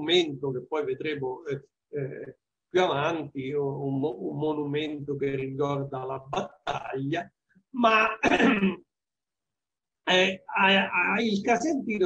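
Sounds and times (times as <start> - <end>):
man coughing: 8.2 - 8.8.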